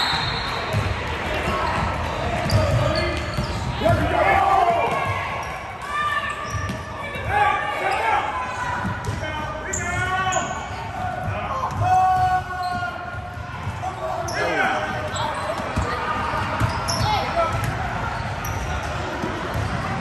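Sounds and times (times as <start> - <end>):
sneaker squeaks: 0.0 - 0.9, 2.4 - 4.0, 4.9 - 7.0, 9.0 - 10.9, 12.1 - 13.2, 13.8 - 18.9.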